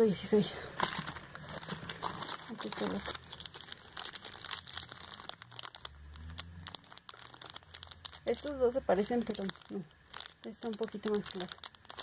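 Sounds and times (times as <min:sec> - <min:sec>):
plastic packaging crinkling: 0:00.8 - 0:12.0.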